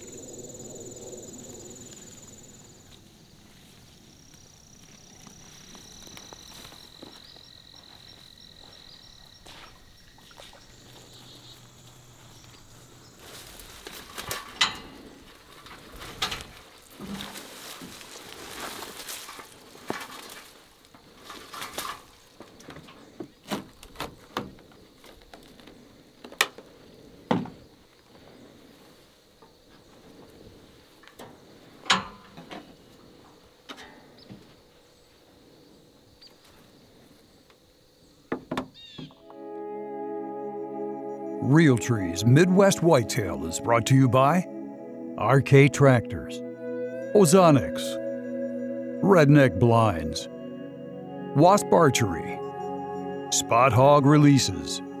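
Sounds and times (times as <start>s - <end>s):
faint insect trilling: 0.0s - 13.5s.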